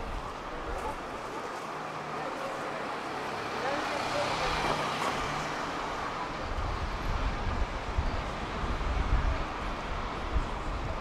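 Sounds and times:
passers-by talking faintly: 0.0 - 11.0
passing vehicle rumble: 0.0 - 11.0
road traffic: 0.0 - 11.0.

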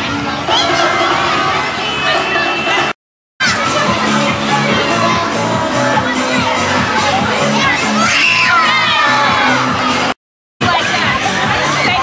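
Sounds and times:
children shouting and cheering: 0.0 - 12.0
background music with bass line: 3.4 - 12.0.

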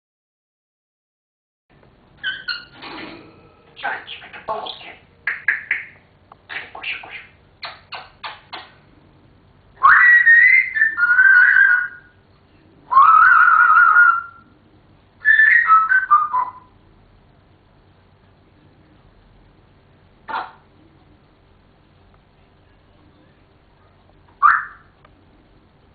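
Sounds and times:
parrot clicks and chirps: 3.8 - 8.8
parrot whistles: 9.8 - 12.2, 12.9 - 14.4, 15.2 - 16.7, 24.4 - 24.9.

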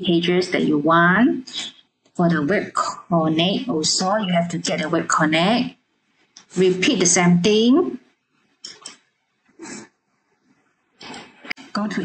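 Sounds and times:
person breathing: 9.6 - 9.8.

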